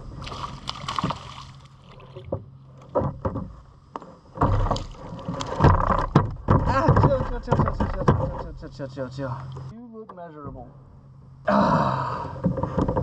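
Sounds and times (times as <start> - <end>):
fish splashing at water surface: 0.2 - 2.3
knocks against a boat: 2.0 - 8.8, 12.3 - 13.0.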